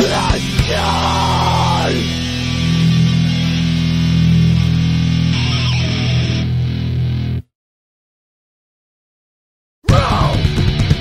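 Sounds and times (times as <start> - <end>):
distorted electric guitars and bass: 0.0 - 7.5, 9.9 - 11.0.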